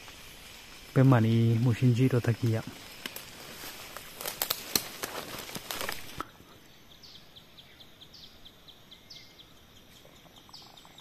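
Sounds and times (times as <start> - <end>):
forest background: 0.0 - 11.0
small birds calling: 0.0 - 11.0
microphone handling crackle: 1.5 - 6.3.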